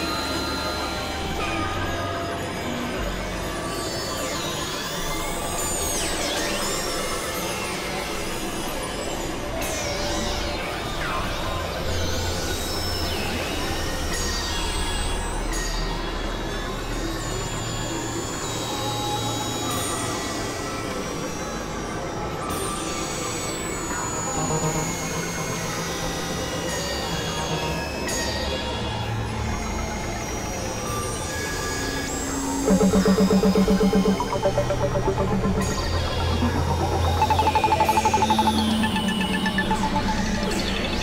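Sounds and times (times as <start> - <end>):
experimental electronic music: 23.9 - 28.4, 32.6 - 41.0
high falling sweeps: 32.6 - 41.0.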